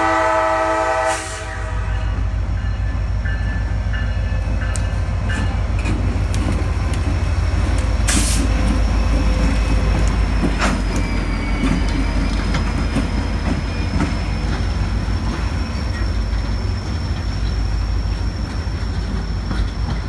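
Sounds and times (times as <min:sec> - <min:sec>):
locomotive horn: 0:00.0 - 0:02.4
wheel squeals: 0:08.4 - 0:20.0.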